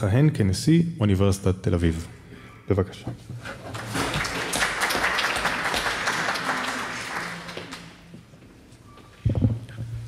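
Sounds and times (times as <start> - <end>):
audience applauding: 3.7 - 8.1.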